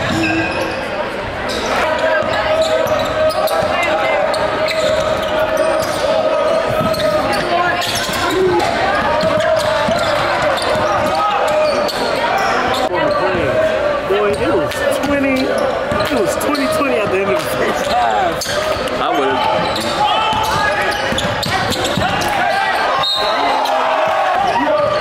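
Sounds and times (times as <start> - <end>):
crowd voices in gym: 0.0 - 25.0
basketball bouncing on hardwood: 8.9 - 11.2.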